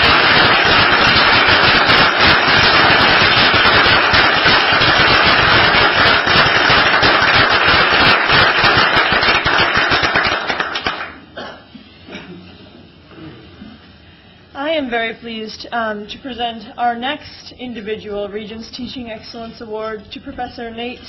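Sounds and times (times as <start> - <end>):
crowd applauding: 0.0 - 11.2.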